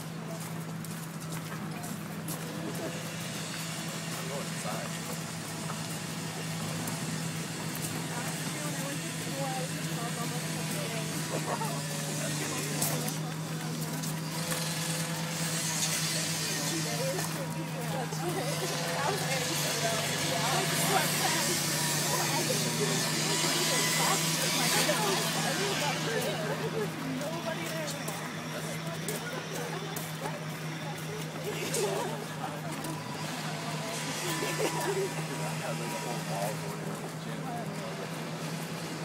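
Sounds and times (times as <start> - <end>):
indistinct chatter: 0.0 - 39.0
traffic-like background noise: 0.0 - 39.0.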